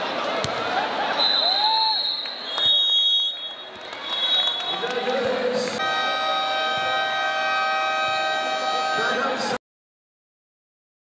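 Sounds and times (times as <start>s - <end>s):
gym buzzer long tone: 5.8s - 9.6s.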